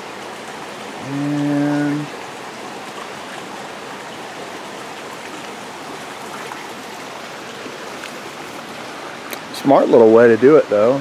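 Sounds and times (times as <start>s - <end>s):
creek water rushing: 0.0s - 11.0s.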